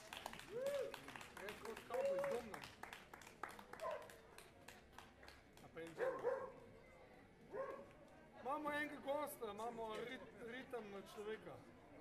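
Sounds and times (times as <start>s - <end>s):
scattered hand claps: 0.0s - 6.4s.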